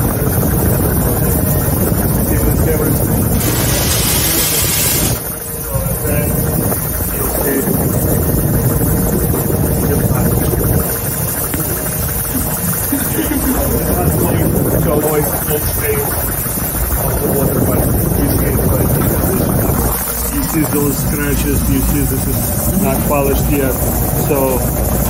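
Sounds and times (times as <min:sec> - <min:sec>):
workshop machinery humming: 0:00.0 - 0:25.0.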